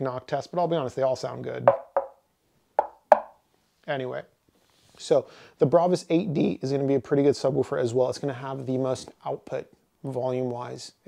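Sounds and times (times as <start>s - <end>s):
knuckles knocking on wooden cabinet: 1.7s - 2.2s, 2.8s - 3.3s.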